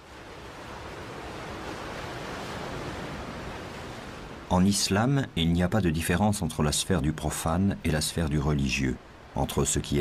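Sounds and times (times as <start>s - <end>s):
sea water rushing: 0.0s - 10.0s
wind: 0.0s - 10.0s.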